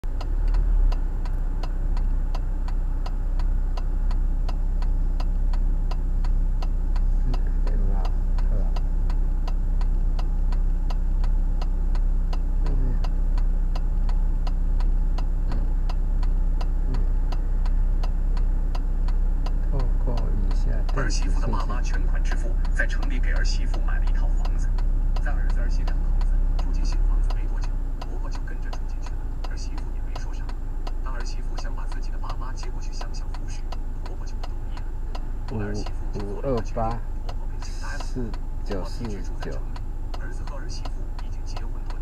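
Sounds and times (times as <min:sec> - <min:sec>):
car engine idling: 0:00.0 - 0:42.0
turn signal ticking: 0:00.0 - 0:42.0.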